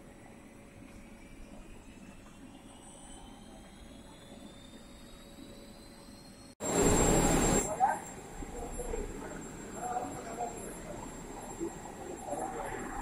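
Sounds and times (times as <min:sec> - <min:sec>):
machine hum with rising whine: 0:00.0 - 0:13.0.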